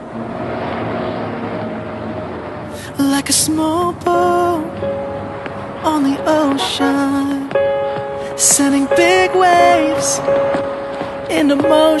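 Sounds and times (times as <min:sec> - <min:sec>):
steady rumbling noise: 0:00.0 - 0:12.0.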